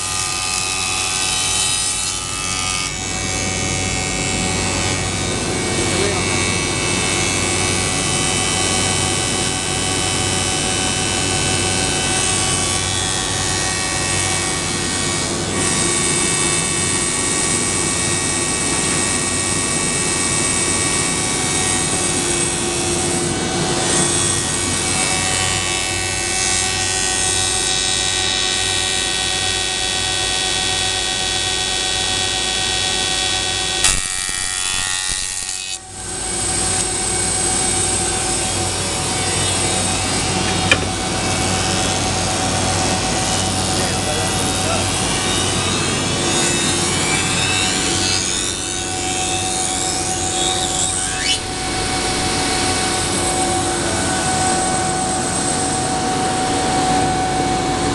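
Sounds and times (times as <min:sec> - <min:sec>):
sharp click: 0:33.8 - 0:34.2
moulder machine whining: 0:35.9 - 0:57.9.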